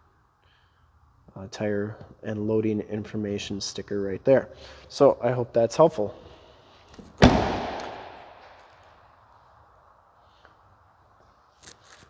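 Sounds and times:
car door slamming shut: 7.2 - 8.1.

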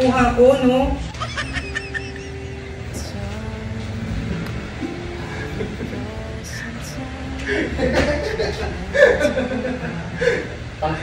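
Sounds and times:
man chuckling: 1.1 - 3.0, 4.8 - 6.7, 7.4 - 10.6
man laughing: 1.1 - 3.0, 4.8 - 6.7, 7.4 - 10.6.

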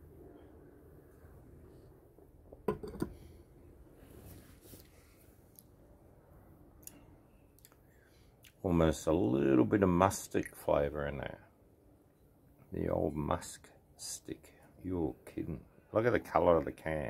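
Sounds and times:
glass knocking on tabletop: 2.6 - 3.1.

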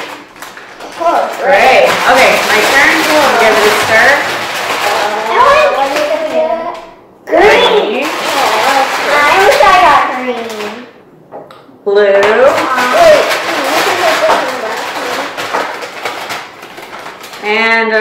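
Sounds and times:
plastic markers rattling in paper bag: 0.0 - 11.0, 12.2 - 18.0
voices talking and exclaiming: 0.8 - 11.0.

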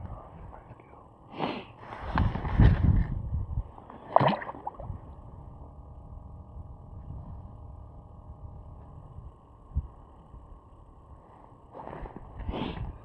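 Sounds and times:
wind rumble on microphone: 1.8 - 3.9, 4.5 - 11.2.

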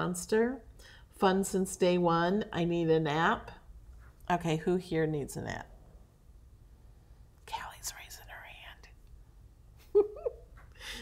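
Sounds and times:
woman whispering: 7.4 - 9.0.

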